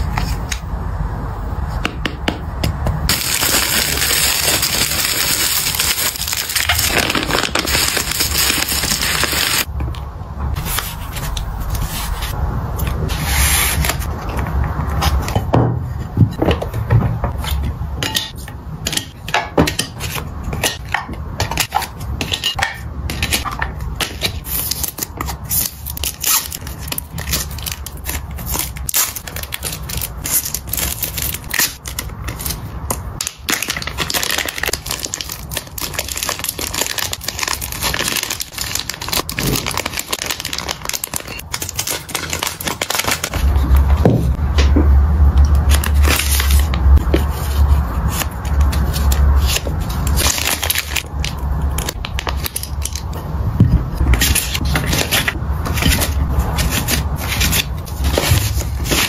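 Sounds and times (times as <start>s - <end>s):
paper and plastic crinkling: 3.1s - 9.7s, 24.1s - 44.4s, 45.6s - 53.2s, 54.0s - 59.0s.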